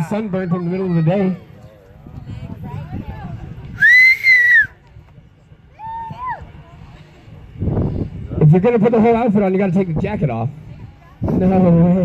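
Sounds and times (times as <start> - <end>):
person whistling shrilly: 3.8 - 4.8.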